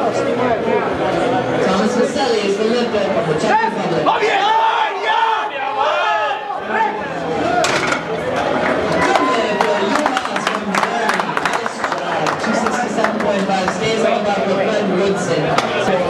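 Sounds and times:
people shouting and cheering: 3.5 - 13.4.

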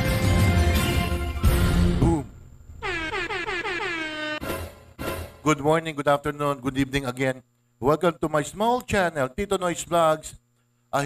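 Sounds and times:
descending horn-like electronic tones: 1.4 - 5.3.

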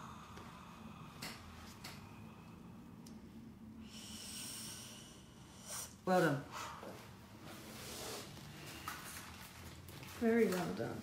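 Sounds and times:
woman breathing through nose: 3.8 - 7.2.

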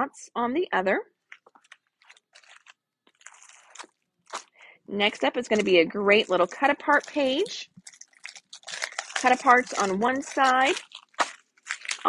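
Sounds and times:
paper and plastic rustling: 1.3 - 12.0.

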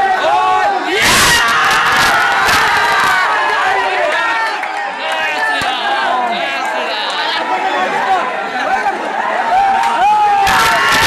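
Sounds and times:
crowd of men shouting: 0.0 - 11.0.

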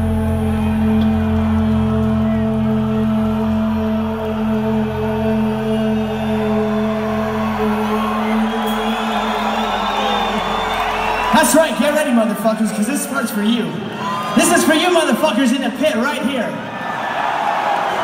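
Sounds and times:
crowd noise: 0.0 - 18.0.

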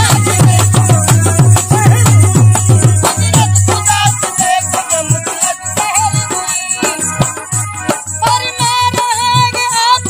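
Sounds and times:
hand drums beating: 0.0 - 10.0
harmonium: 0.0 - 10.0.

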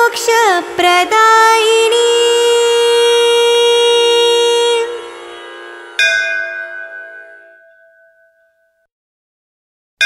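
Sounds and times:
bell ringing: 6.0 - 8.8.

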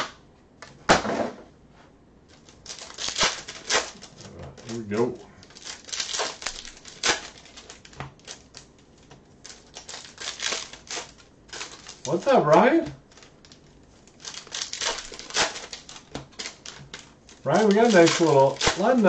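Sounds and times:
card pack wrappers crinkling: 2.3 - 19.0
cards being flicked through: 14.3 - 19.0.

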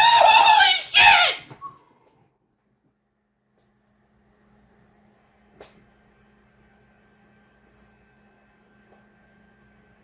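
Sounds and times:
man yelling: 0.0 - 1.5.

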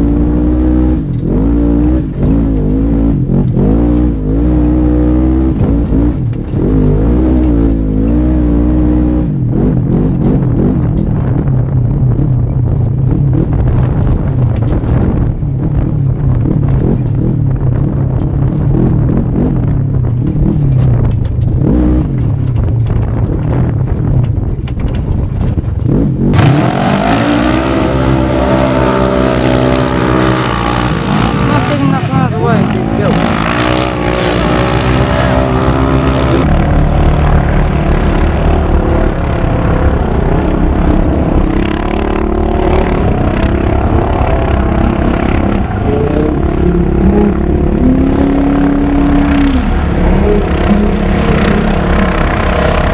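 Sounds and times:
race engines revving: 0.0 - 52.9.

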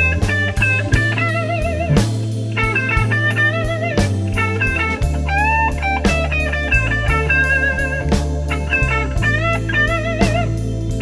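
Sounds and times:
bass line: 0.0 - 11.0
drum kit: 0.0 - 11.0
electric guitar bent note: 1.8 - 2.3.

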